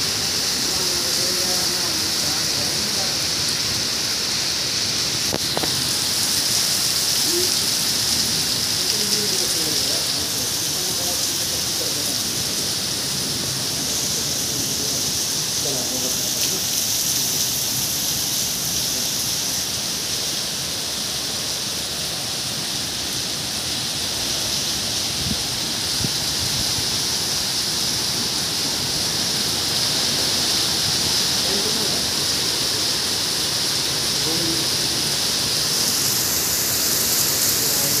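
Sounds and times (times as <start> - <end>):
heavy rain on pavement: 0.0 - 38.0.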